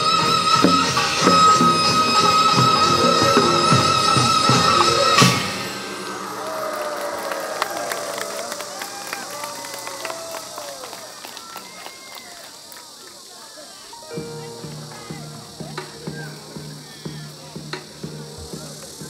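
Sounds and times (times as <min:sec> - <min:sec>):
traditional folk music: 0:00.0 - 0:07.9, 0:13.8 - 0:19.0
quiet voices: 0:00.0 - 0:19.0.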